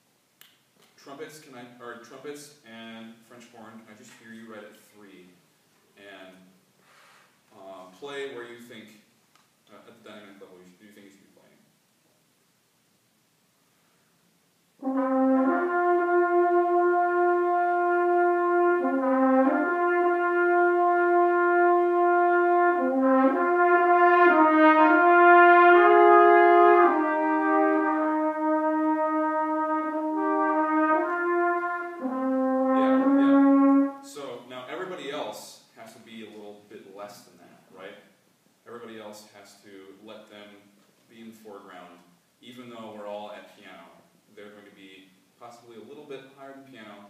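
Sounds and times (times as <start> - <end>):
trumpets and french horn playing: 14.8 - 34.4.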